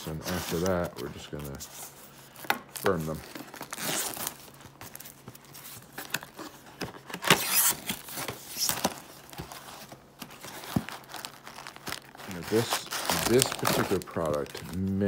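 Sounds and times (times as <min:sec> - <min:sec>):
cellophane crinkling: 0:00.0 - 0:15.0.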